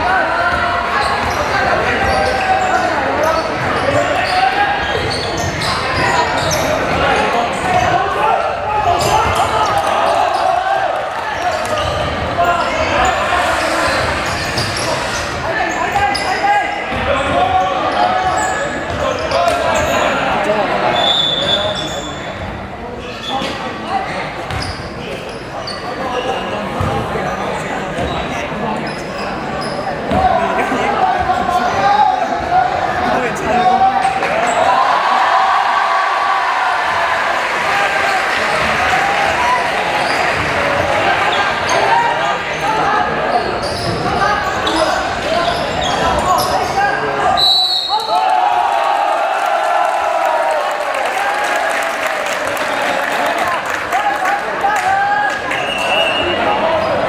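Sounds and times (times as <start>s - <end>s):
shoes squeaking on floor: 1.0s - 7.0s, 11.4s - 16.5s, 23.0s - 27.0s, 43.3s - 46.8s
crowd shouting: 30.1s - 43.4s, 44.0s - 57.0s
short high whistle: 47.4s - 48.1s.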